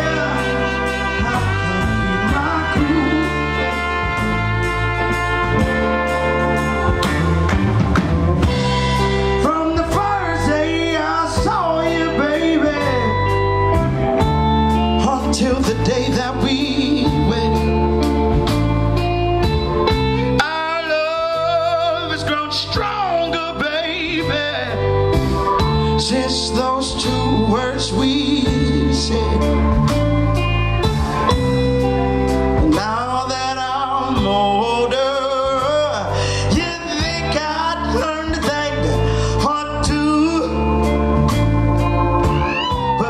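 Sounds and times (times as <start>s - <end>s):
drums keeping a steady beat: 0.0s - 20.3s
bass guitar: 0.0s - 43.0s
electric guitar: 0.0s - 43.0s
keyboard: 0.0s - 43.0s
soul band playing: 0.0s - 43.0s.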